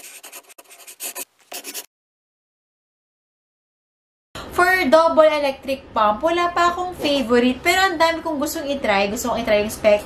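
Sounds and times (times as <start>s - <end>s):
pen scratching on paper: 0.0s - 1.9s.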